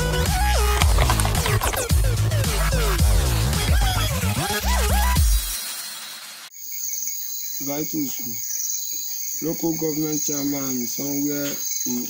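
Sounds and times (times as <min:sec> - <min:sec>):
crickets chirping: 0:06.5 - 0:12.0.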